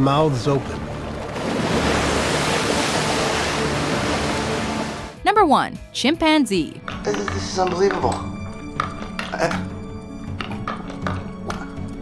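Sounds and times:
water rushing and splashing: 0.0 - 5.2.

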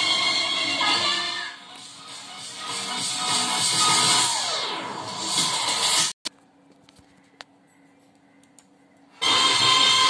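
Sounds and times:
intro music: 1.6 - 6.1.

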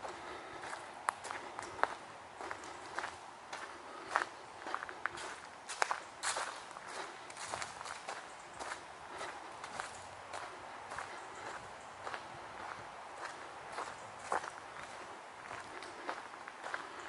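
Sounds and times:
footsteps crunching on leaves: 0.0 - 17.0.

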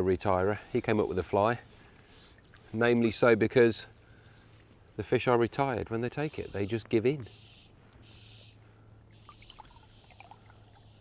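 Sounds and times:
river water trickling: 0.0 - 11.0
water drips: 9.1 - 11.0.

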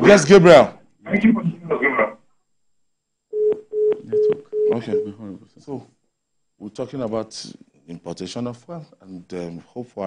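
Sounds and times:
pulsing telephone line beep: 3.4 - 5.1.

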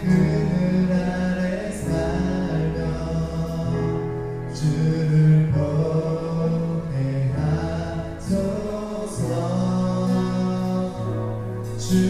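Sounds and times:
electronic keyboard: 0.0 - 12.0.

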